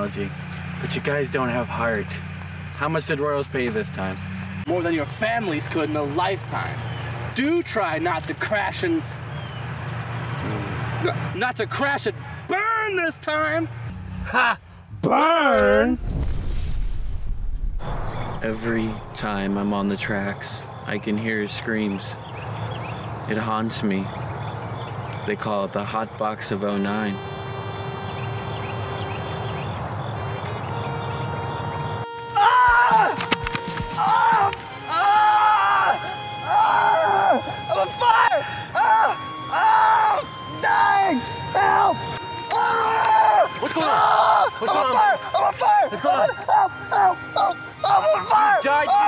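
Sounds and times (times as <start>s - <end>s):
explosion sound effect: 15.6s - 19.2s
music with long held notes: 26.9s - 49.0s
person screaming: 32.4s - 33.2s, 34.0s - 49.0s.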